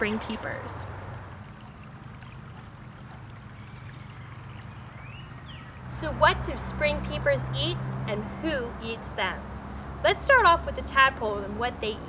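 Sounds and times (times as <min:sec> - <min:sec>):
stream flowing over rocks: 0:00.9 - 0:06.5.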